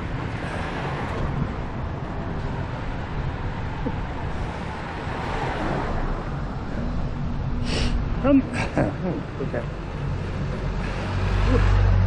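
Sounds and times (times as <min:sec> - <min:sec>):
bicycle tyre and road noise: 0:00.0 - 0:12.0
wind rumble on microphone: 0:00.0 - 0:12.0.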